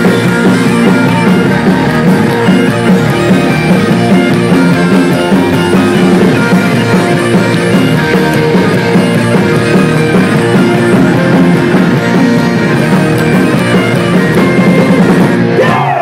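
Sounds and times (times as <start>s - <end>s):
bagpipes with drones: 0.0s - 15.6s
folk-rock band playing: 0.0s - 16.0s.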